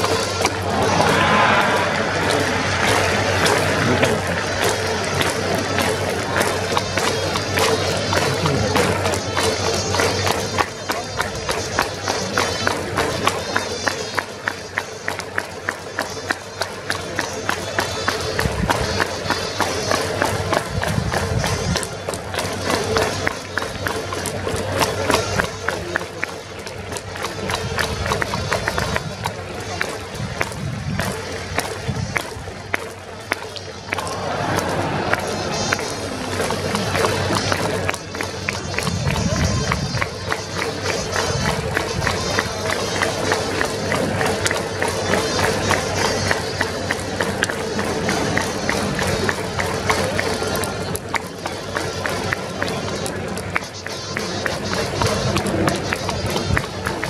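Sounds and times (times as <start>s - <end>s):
crowd clapping along: 0.0s - 57.0s
stadium cheering music: 0.0s - 57.0s.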